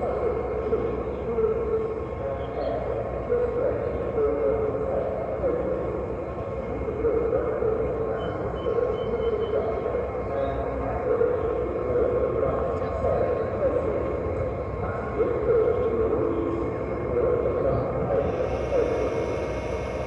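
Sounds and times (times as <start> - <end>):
indistinct background voices: 0.0 - 20.0
model train running on track: 0.0 - 20.0.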